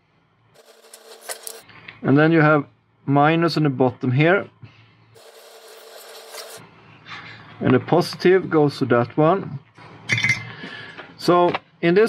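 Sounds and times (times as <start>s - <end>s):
solder sizzling and crackling: 0.6s - 1.6s, 5.2s - 6.6s.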